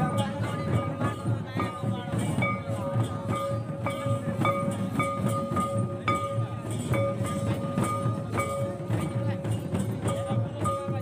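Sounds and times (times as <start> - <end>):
percussion strokes: 0.0 - 11.0.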